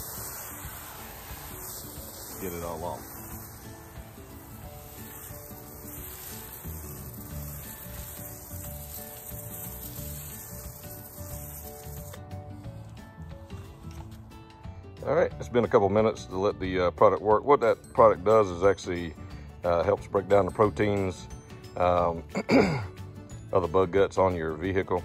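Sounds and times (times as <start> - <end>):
foam sprayer hissing: 0.0 - 15.8
soft background music: 0.0 - 25.0.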